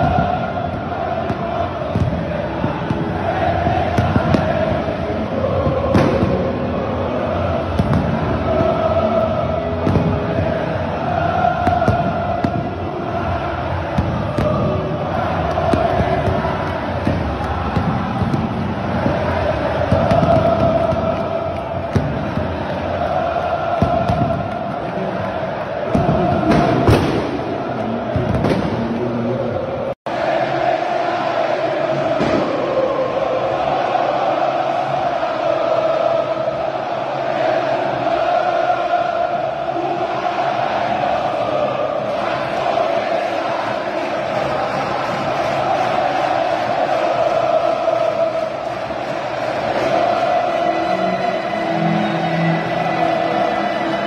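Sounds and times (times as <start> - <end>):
stadium crowd chanting: 0.0 - 54.0.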